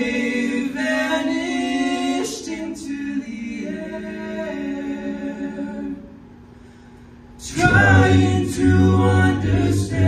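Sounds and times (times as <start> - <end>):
male a cappella group singing: 0.0 - 6.2, 7.4 - 10.0.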